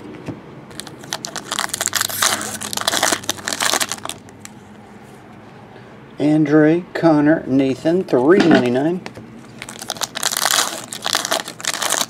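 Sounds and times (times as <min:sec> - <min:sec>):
wrapper tearing and crinkling: 0:00.7 - 0:04.5, 0:09.5 - 0:12.0.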